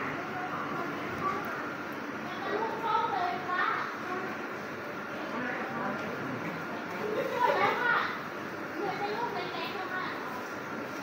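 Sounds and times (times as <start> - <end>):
murmur of voices: 0.0 - 10.8.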